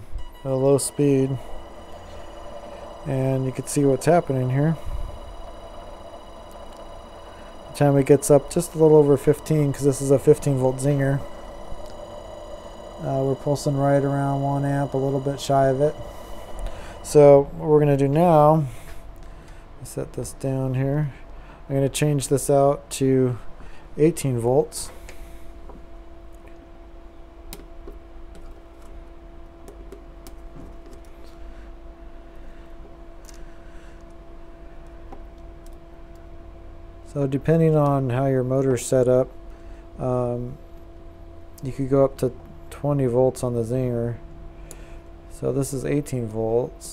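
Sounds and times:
steady electrical hum: 0:00.0 - 0:46.9
small motor whine: 0:00.2 - 0:18.6.

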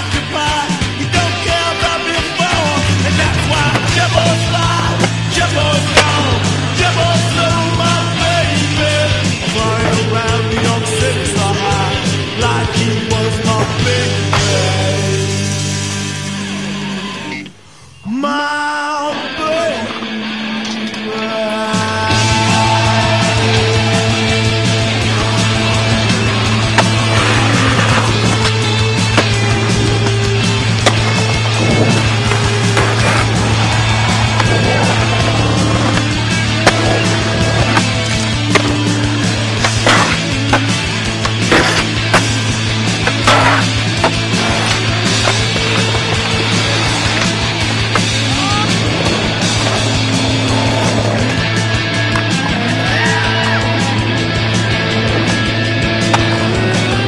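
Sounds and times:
skateboards rolling on pavement: 0:00.0 - 0:17.7, 0:22.0 - 0:57.0
skateboard clacks landing: 0:05.8 - 0:06.5
music with low bass: 0:22.1 - 0:57.0.

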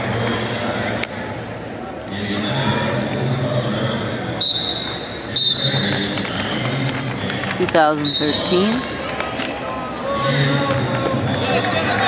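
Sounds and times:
low murmur of voices: 0:00.0 - 0:12.0
shoes squeaking on mat: 0:07.7 - 0:09.6.

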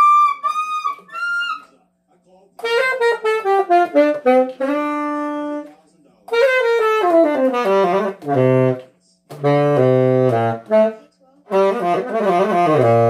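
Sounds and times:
solo tenor saxophone: 0:00.0 - 0:01.6, 0:02.6 - 0:05.7, 0:06.3 - 0:13.0.

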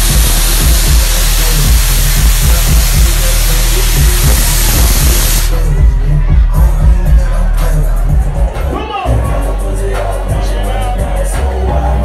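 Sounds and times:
hiss-like wash: 0:00.0 - 0:05.5
loud dance music with heavy bass: 0:00.0 - 0:12.0.

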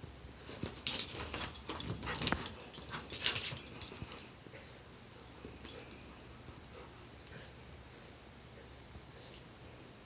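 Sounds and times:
paws and claws on hardwood floor: 0:00.4 - 0:04.3.

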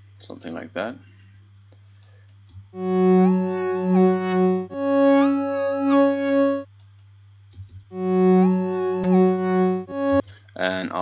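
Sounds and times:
synth sustained notes: 0:02.8 - 0:06.7, 0:07.9 - 0:10.2.

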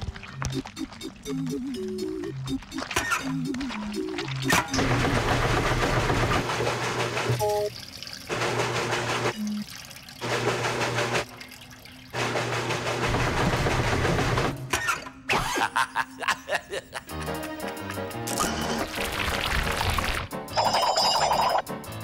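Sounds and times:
water churning and sloshing: 0:00.0 - 0:14.6, 0:18.4 - 0:20.3.

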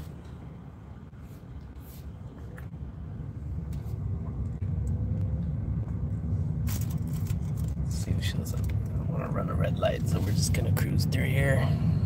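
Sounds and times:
road and tyre rumble in car: 0:02.2 - 0:12.0.

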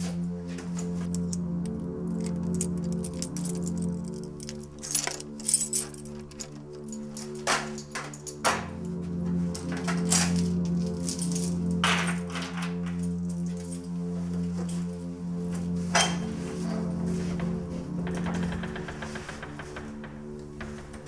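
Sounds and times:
low drone of score music: 0:00.0 - 0:21.0
keys and door lock clanking: 0:00.8 - 0:14.0.

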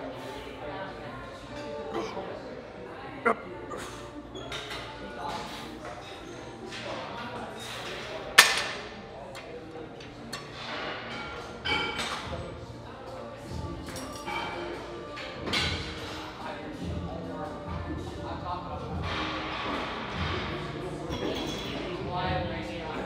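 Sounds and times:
background music: 0:09.2 - 0:23.0.

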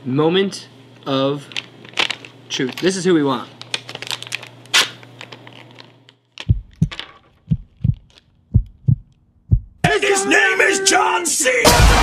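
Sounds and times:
foil bag crinkling: 0:01.3 - 0:07.4
heartbeat thumps: 0:06.4 - 0:09.9.

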